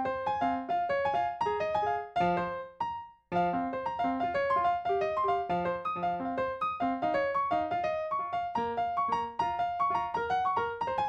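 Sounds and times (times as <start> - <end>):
solo piano melody: 0.0 - 11.0.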